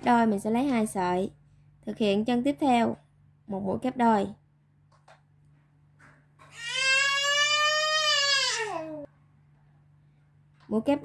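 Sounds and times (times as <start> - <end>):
long crying wail: 6.5 - 9.0.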